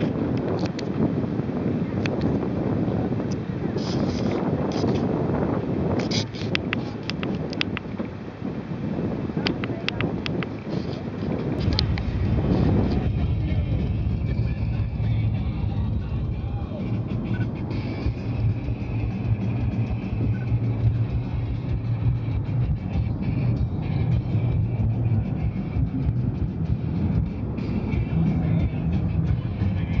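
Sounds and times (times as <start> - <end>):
car driving at speed: 0.0 - 30.0
music playing: 11.6 - 30.0.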